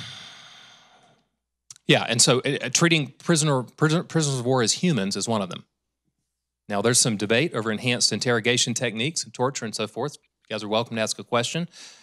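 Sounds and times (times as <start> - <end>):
man exhaling into microphone: 0.0 - 1.1
man speaking: 1.7 - 5.6, 6.7 - 11.9.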